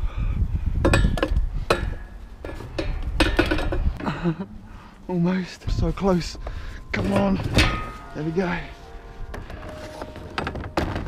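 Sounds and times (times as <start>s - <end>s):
low rumbling bumps: 0.2s - 11.0s
metal chair clanking and knocking: 0.9s - 4.1s.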